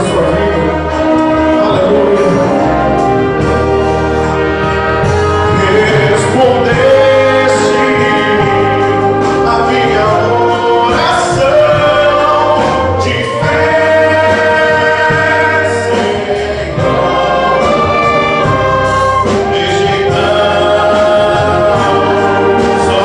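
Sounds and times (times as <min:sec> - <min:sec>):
drum kit: 0:00.0 - 0:23.0
wind band playing gospel music: 0:00.0 - 0:23.0.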